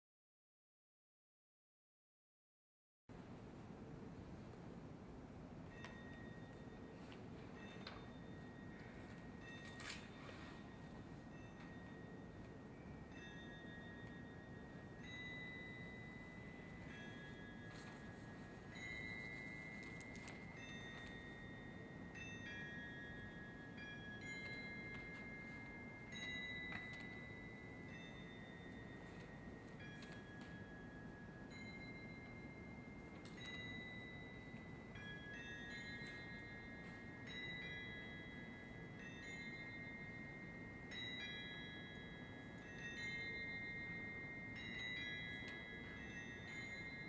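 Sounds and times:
bell-like mallet percussion: 5.6s - 47.0s
crotales ringing: 7.6s - 47.0s.

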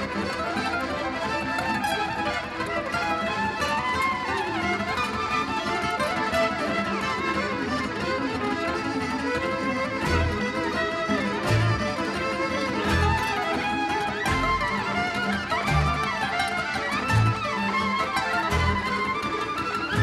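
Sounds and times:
accordion: 0.0s - 20.0s
acoustic guitar: 0.0s - 20.0s
violin melody: 0.0s - 20.0s.

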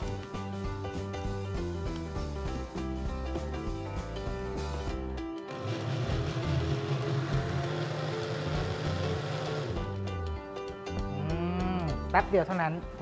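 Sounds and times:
background music: 0.0s - 13.0s
blender motor running: 5.5s - 9.9s.

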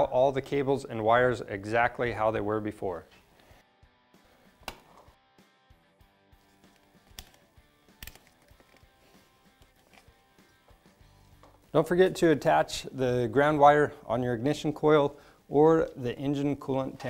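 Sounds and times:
faint background music: 6.0s - 17.0s
plastic clips clicking into place: 6.8s - 7.4s, 8.0s - 8.9s.

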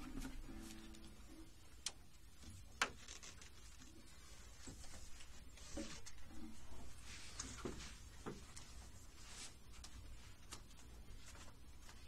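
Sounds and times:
guitar note ringing: 0.4s - 1.5s.

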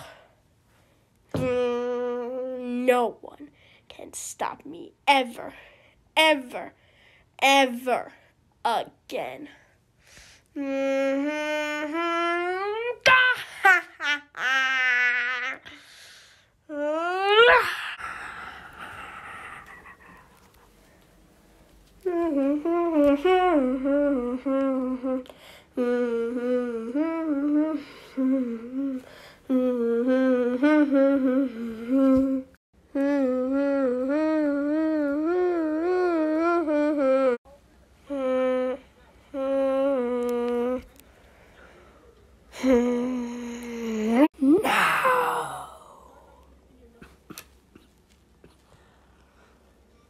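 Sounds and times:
person humming: 1.4s - 2.6s, 10.6s - 13.1s, 22.0s - 40.9s, 42.5s - 46.4s
boy sighing: 15.5s - 20.3s, 42.5s - 46.4s.

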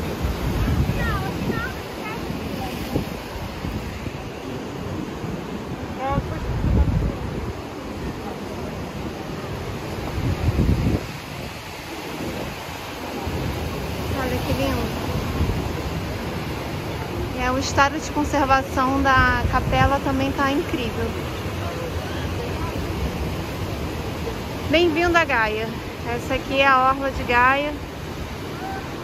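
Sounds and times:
surf breaking over rocks: 0.0s - 29.0s
wind buffeting microphone: 0.0s - 29.0s.

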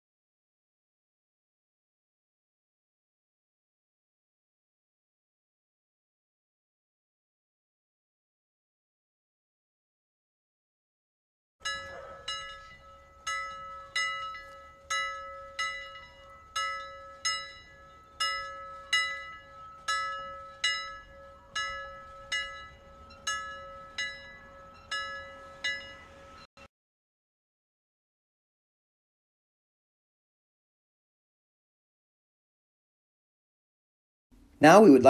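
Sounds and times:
bell-like alarm chime: 11.6s - 26.5s
steady ringing tone: 11.6s - 26.5s.

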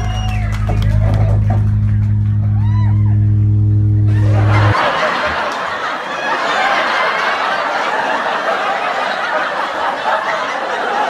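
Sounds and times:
band's held low chord: 0.0s - 5.8s
group of people laughing: 4.1s - 11.0s.

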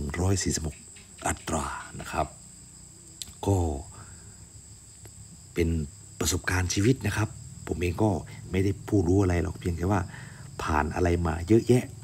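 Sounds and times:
man speaking: 0.0s - 2.4s, 3.2s - 4.0s, 5.6s - 12.0s.

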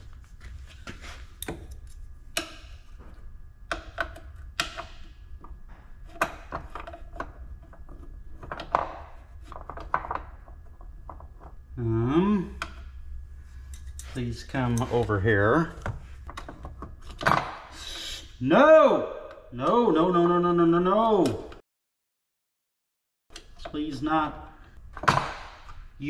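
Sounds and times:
low hum: 0.0s - 17.2s
person mumbling: 19.6s - 21.4s.

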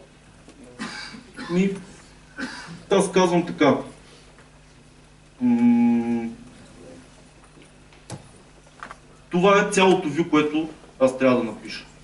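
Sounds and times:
man humming: 5.4s - 6.6s.

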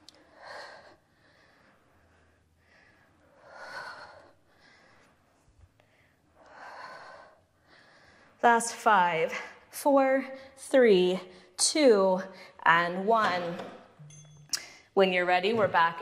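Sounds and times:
woman breathing hard: 0.0s - 8.4s.

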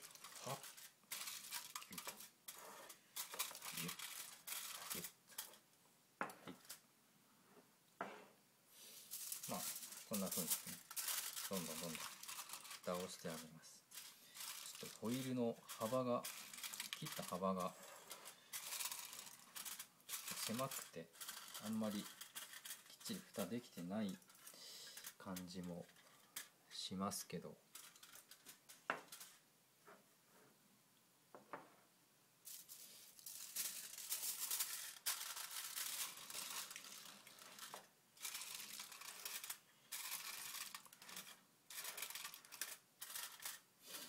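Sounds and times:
aluminium foil crinkling: 0.0s - 5.6s, 6.5s - 6.8s, 8.8s - 29.4s, 32.5s - 44.0s.

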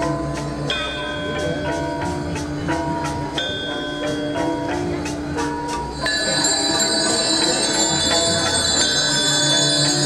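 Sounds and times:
gamelan playing: 0.0s - 10.0s.

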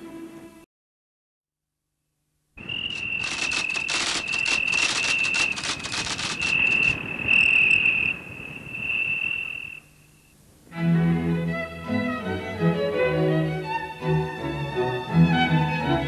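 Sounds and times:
insects chirping: 2.6s - 10.6s.

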